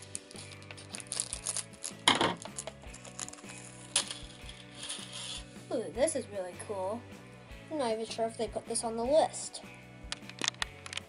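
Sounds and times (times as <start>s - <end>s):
pack opening clatter: 0.0s - 5.5s, 10.1s - 11.0s
wrapper rustling: 0.0s - 5.5s
background music: 0.0s - 11.0s.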